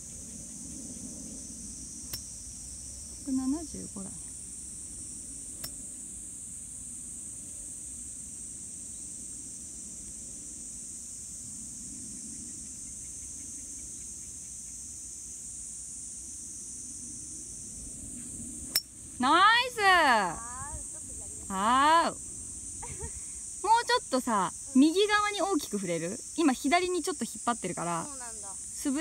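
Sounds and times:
insects droning: 0.0s - 29.0s.

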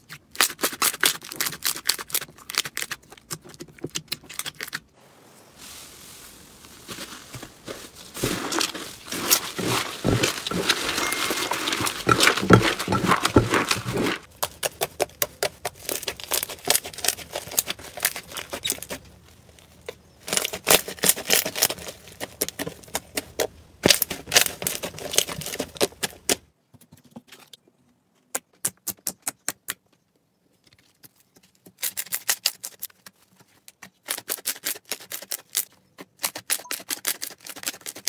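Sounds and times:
slime squishing and crackling: 7.7s - 26.3s.

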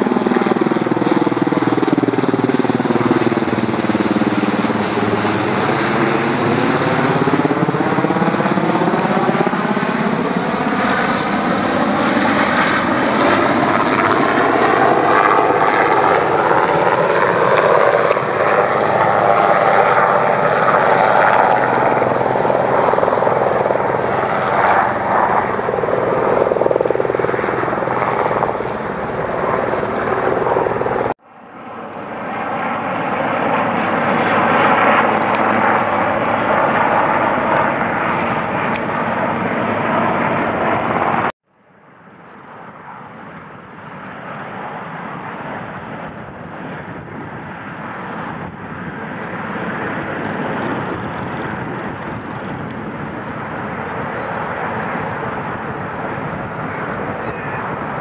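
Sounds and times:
helicopter flying overhead: 0.0s - 58.0s.

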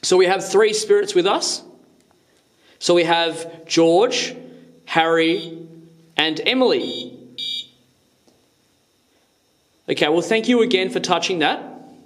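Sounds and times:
short electronic beep: 5.2s - 5.6s, 6.8s - 7.8s.

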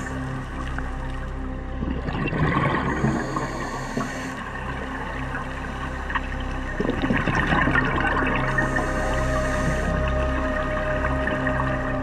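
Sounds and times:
steady musical drone: 0.0s - 12.0s
underwater exhaled breath bubbling: 1.8s - 5.0s.

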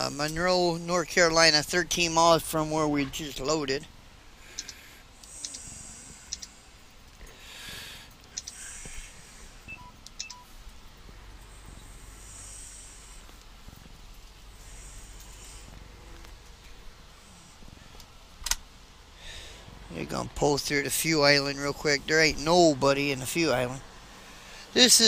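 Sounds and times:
truck engine rumble: 0.0s - 25.0s
clicks: 4.5s - 5.7s, 6.3s - 7.2s, 8.1s - 8.6s.

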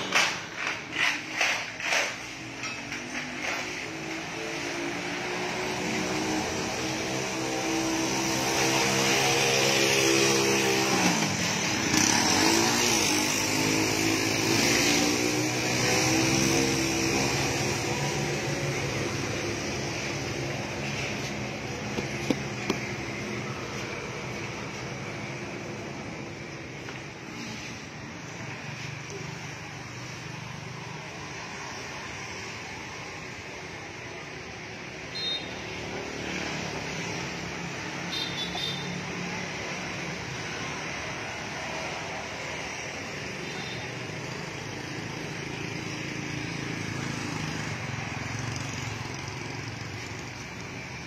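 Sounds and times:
motor vehicle running: 10.1s - 29.9s.

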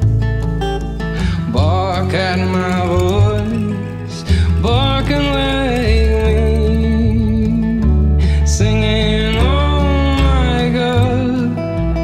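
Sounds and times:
acoustic guitar: 0.0s - 12.0s
country song: 0.0s - 12.0s
sliding wavering lead melody: 0.0s - 12.0s.

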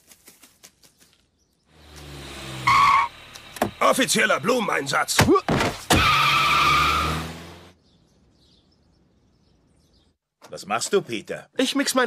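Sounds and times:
car engine revving away: 1.7s - 4.0s, 6.0s - 7.8s
tyres squealing: 2.5s - 7.6s.

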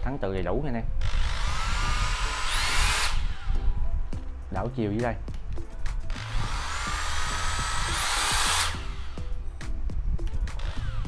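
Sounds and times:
impact driver motor whine: 1.1s - 3.6s, 6.1s - 9.2s, 10.6s - 11.0s.

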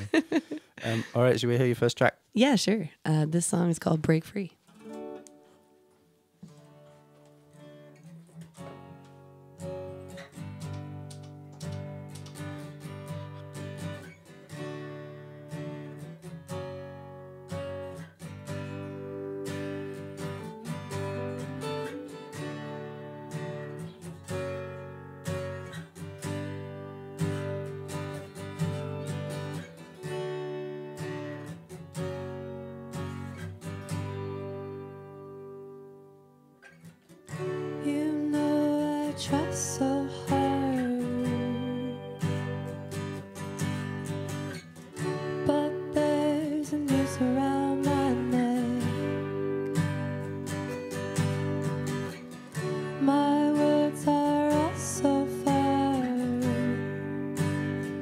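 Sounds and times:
acoustic guitar strumming: 3.4s - 58.0s
electric guitar: 4.7s - 58.0s.

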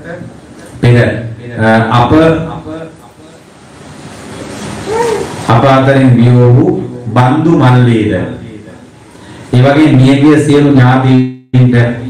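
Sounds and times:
man speaking: 0.0s - 3.4s, 5.5s - 8.9s.

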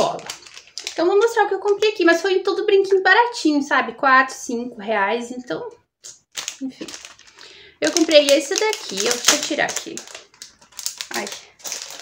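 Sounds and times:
plastic packet rustling and clicking: 0.0s - 2.2s, 6.2s - 12.0s.

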